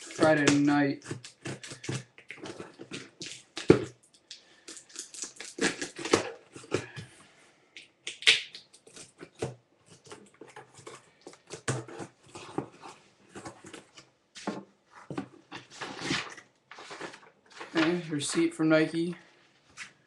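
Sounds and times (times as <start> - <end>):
cardboard box rustling and scraping: 14.9 - 17.9.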